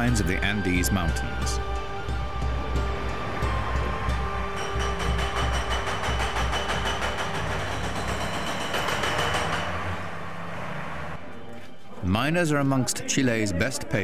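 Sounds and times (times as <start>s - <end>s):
documentary music with pulsing beat: 0.0s - 10.0s
heavy mine machinery noise: 2.1s - 11.2s.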